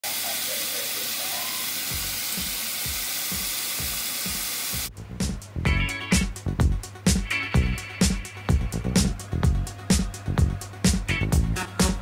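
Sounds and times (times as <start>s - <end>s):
music with strong beat: 1.9s - 12.0s.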